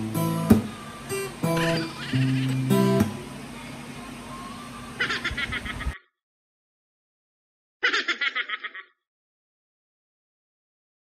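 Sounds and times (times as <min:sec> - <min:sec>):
acoustic guitar strum: 0:00.0 - 0:03.2
person giggling: 0:01.6 - 0:02.6, 0:05.0 - 0:06.0, 0:07.8 - 0:09.0.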